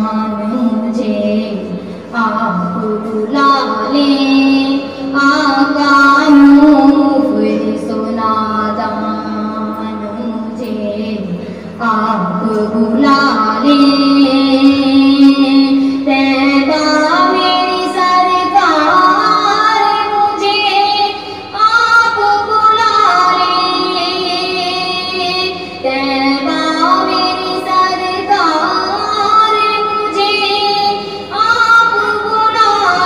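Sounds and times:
woman singing devotional song: 0:00.0 - 0:33.0.

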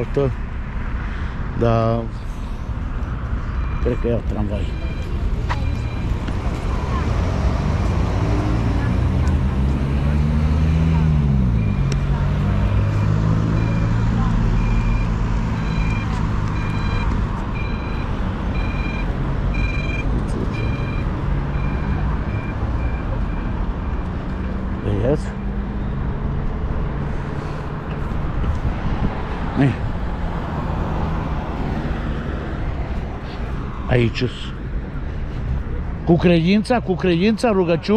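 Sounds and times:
street traffic engine drone: 0:00.0 - 0:37.9
crossing signal beeping: 0:03.4 - 0:09.7, 0:10.7 - 0:24.7.

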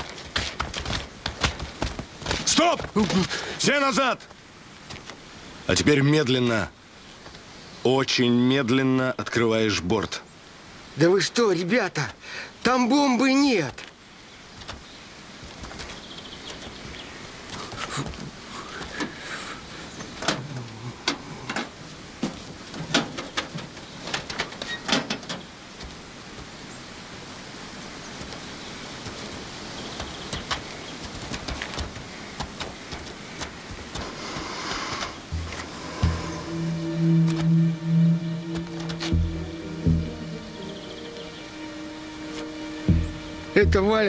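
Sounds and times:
outdoor noise: 0:00.0 - 0:44.0
low sustained music chord: 0:35.3 - 0:44.0.

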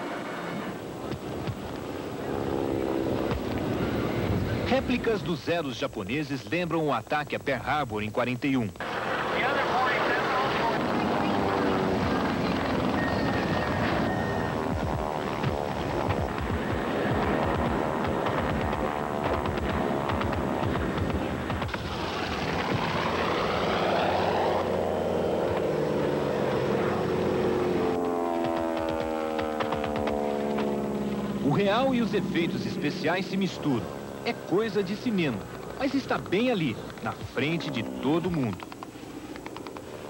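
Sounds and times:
propeller plane engines droning: 0:00.0 - 0:40.0.

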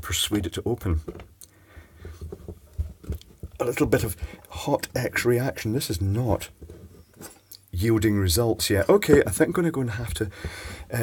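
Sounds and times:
low handling knocks: 0:08.8 - 0:10.6.

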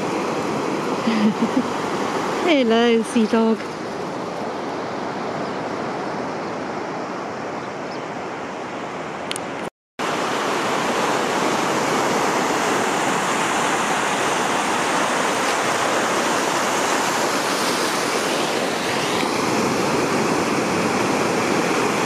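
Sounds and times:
small waves washing over sand: 0:00.0 - 0:07.3, 0:10.0 - 0:22.0.

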